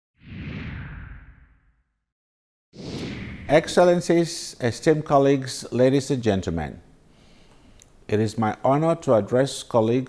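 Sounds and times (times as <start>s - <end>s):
whoosh sweep: 0.2s - 1.8s, 2.8s - 3.8s
low rumble: 2.8s - 3.6s.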